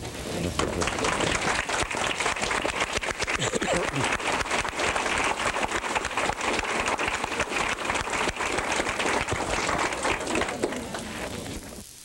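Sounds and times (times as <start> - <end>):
audience applauding: 0.4 - 11.7.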